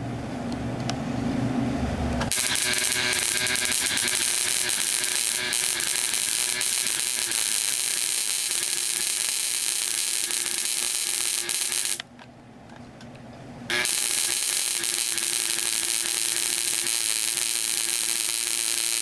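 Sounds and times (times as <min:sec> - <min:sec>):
faint relay buzz: 0:02.2 - 0:12.1, 0:13.7 - 0:19.0
high-voltage spark crackling: 0:02.3 - 0:12.0, 0:13.7 - 0:19.0.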